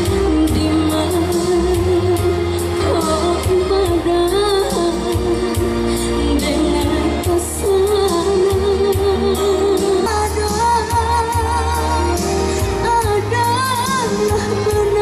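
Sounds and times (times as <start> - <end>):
instrumental backing with steady beat: 0.0 - 15.0
woman singing into a microphone: 0.0 - 15.0.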